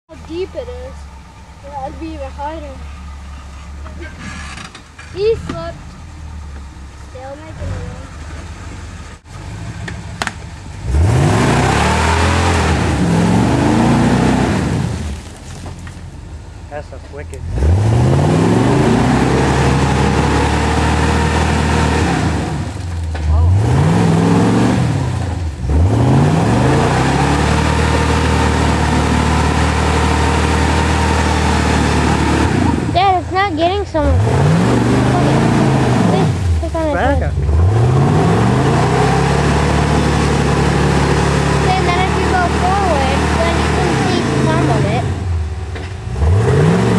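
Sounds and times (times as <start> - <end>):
engine revving hard: 9.4 - 15.2, 17.3 - 46.9.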